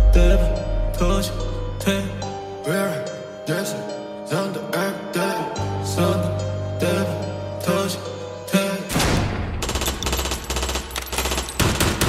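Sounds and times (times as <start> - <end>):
bass-boosted low end: 0.0 - 1.9.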